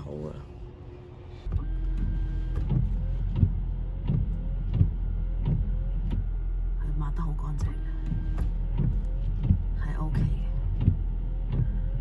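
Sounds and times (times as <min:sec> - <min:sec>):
low steady hum: 0:00.0 - 0:12.0
wiper motor whine: 0:00.0 - 0:12.0
windshield wipers sweeping glass: 0:01.4 - 0:06.5, 0:07.6 - 0:12.0.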